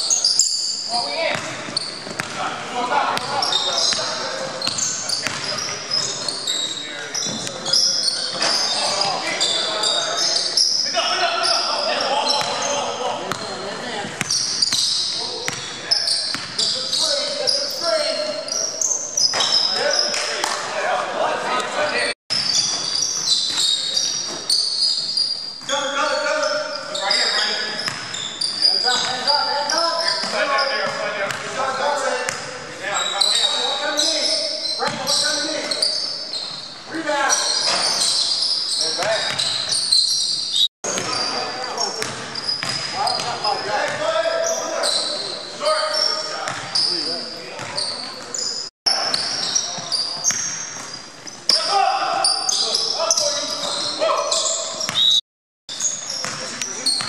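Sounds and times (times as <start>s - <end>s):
sneakers squeaking: 0.0s - 20.7s, 21.4s - 57.0s
players calling out: 0.1s - 55.2s
basketball bouncing: 1.3s - 2.4s, 3.9s - 5.8s, 13.3s - 15.7s, 16.3s - 16.6s, 42.0s - 44.0s.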